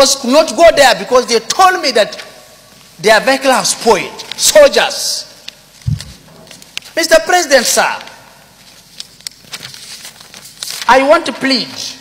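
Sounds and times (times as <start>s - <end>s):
man talking: 0.0s - 2.3s, 3.0s - 5.4s, 7.0s - 8.3s, 10.9s - 12.0s
paper rustling and crinkling: 5.8s - 7.0s, 7.6s - 12.0s.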